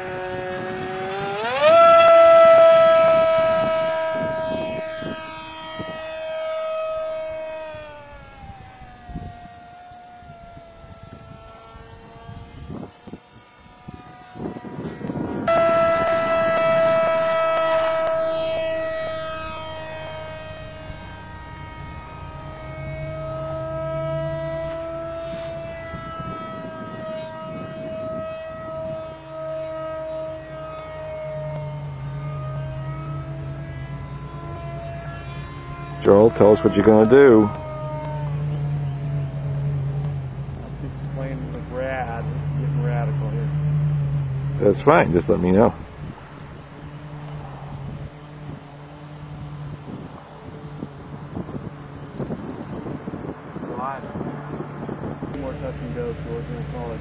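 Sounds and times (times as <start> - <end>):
model boat motor whining: 0.0 - 57.0.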